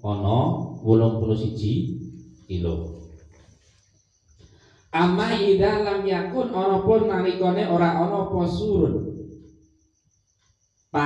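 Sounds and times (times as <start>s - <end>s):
man talking into a microphone: 0.0s - 1.9s, 2.5s - 2.9s.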